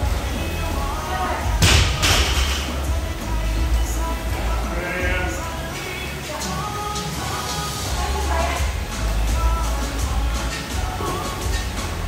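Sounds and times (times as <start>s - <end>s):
music with heavy bass: 0.0s - 12.0s.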